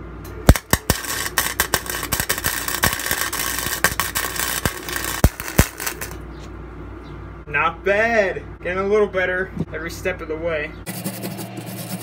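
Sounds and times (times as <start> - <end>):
low steady hum: 0.0 - 12.0
welder arc crackling and popping: 0.5 - 6.2.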